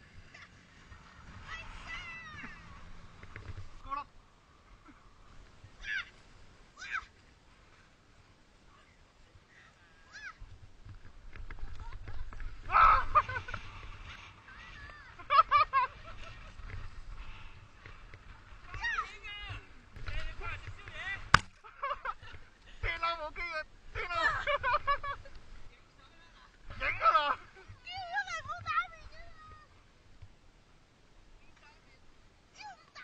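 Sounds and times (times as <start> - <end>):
high-pitched yelps: 10.1 - 10.4
wind rumble on microphone: 10.4 - 21.3.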